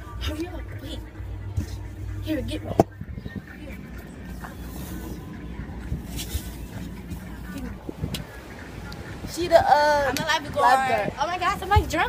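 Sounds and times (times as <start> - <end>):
faint voices: 0.0 - 12.0
wind rumbling on microphone: 2.4 - 12.0.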